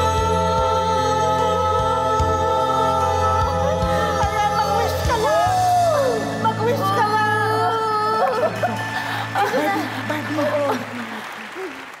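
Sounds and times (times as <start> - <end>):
audience applauding: 8.3 - 12.0.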